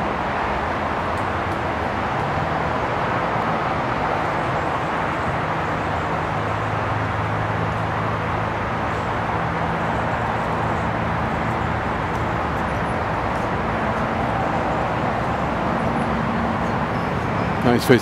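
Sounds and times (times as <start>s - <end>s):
outdoor background noise: 0.0s - 18.0s.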